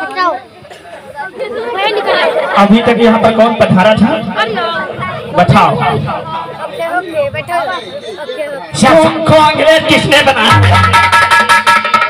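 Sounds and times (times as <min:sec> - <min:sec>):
indistinct chatter of voices: 0:00.0 - 0:11.1.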